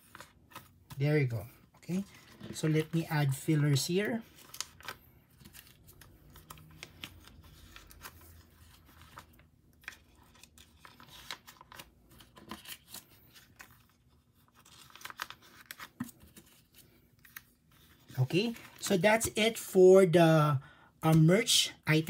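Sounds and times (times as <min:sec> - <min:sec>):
plastic sleeves crinkling: 0:00.0 - 0:19.0.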